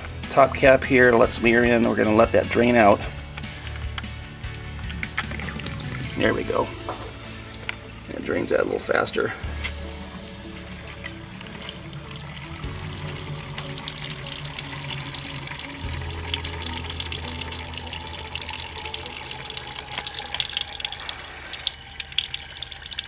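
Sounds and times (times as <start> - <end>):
water splashing onto concrete: 0.0 - 23.0.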